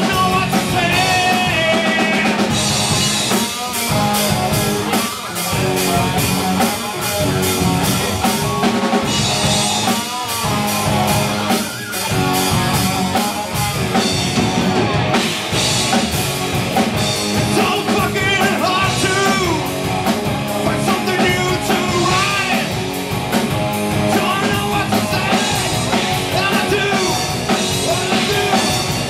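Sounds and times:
drum kit beat with cymbals: 0.0s - 29.0s
electric guitars: 0.0s - 29.0s.

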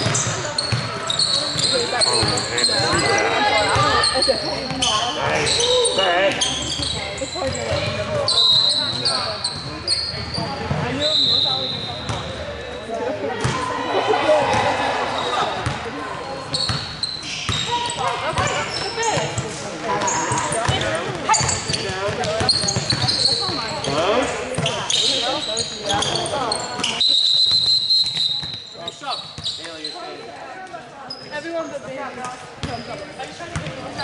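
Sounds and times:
basketball bouncing: 0.0s - 3.1s, 20.0s - 24.0s.

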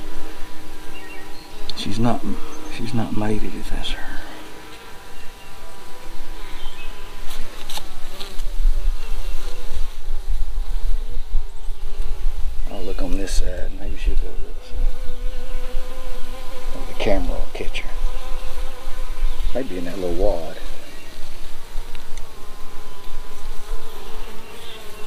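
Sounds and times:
honey bees buzzing: 0.0s - 25.0s
louder bee buzz rising and falling: 0.0s - 25.0s.

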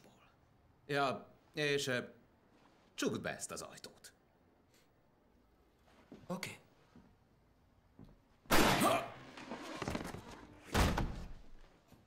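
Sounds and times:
loud heavy thud: 10.7s - 11.5s.

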